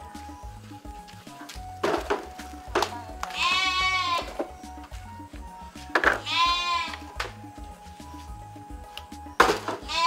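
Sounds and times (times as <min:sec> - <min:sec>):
background music with low beat: 0:00.0 - 0:10.0
goat-like bleats: 0:02.9 - 0:04.4, 0:06.2 - 0:07.1.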